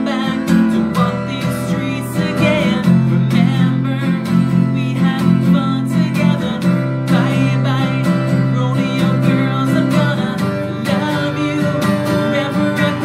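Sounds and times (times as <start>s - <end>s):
acoustic guitar strumming: 0.0s - 13.0s
man singing: 0.0s - 13.0s.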